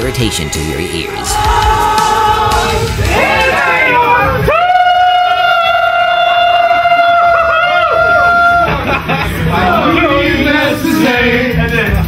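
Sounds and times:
lively crowd voices: 0.0s - 6.2s, 7.2s - 12.0s.

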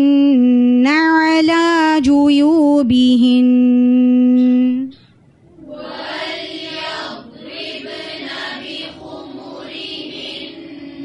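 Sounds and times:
person chanting recitation: 0.0s - 4.9s, 5.5s - 11.0s.

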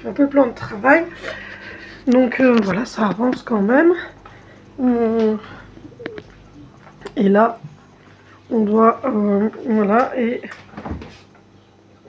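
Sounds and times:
faint clicks: 2.1s - 7.2s
woman saying euh: 4.8s - 6.2s.

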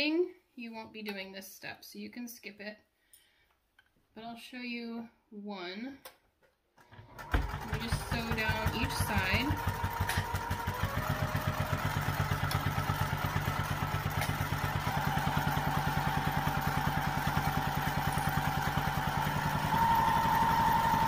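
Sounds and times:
sewing machine stitching: 6.8s - 21.0s.

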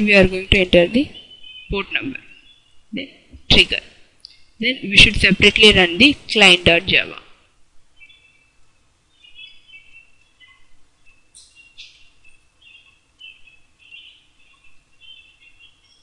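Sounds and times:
faint bird chirps: 0.0s - 4.9s, 5.6s - 16.0s.

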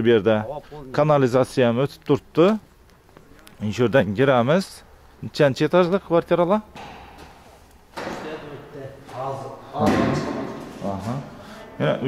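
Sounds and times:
man speaking: 0.0s - 2.6s, 3.3s - 6.7s, 8.1s - 12.0s.

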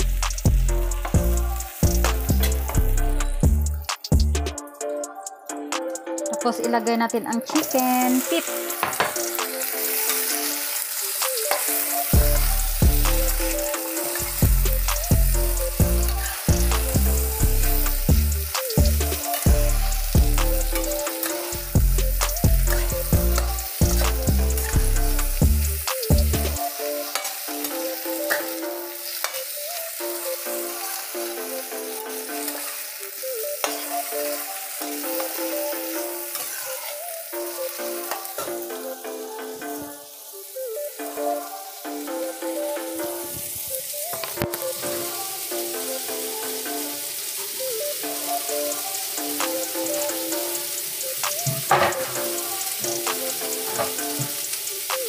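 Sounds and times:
food sizzling in hot oil: 0.0s - 4.2s, 6.3s - 55.0s.

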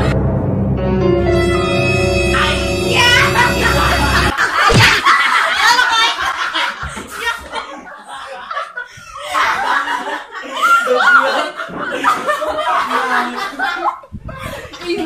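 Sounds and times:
people laughing hard: 3.1s - 15.0s
people exclaiming: 10.6s - 11.6s.

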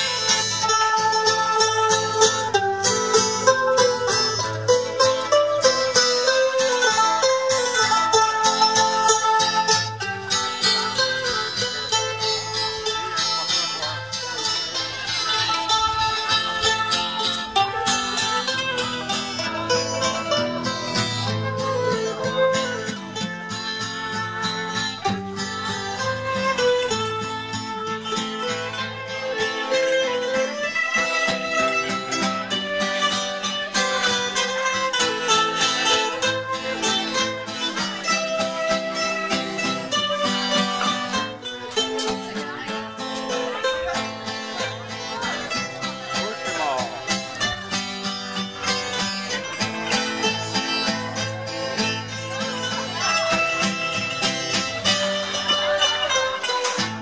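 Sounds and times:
acoustic guitar: 0.0s - 57.0s
mandolins picking rapidly: 0.0s - 57.0s.

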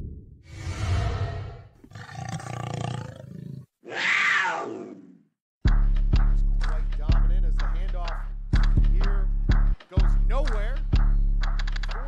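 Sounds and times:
big cat roaring: 0.6s - 5.2s.

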